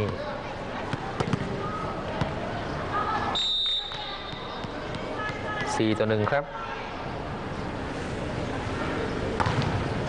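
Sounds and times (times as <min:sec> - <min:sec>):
crowd noise in sports hall: 0:00.0 - 0:10.0
whistle blast: 0:03.4 - 0:04.1.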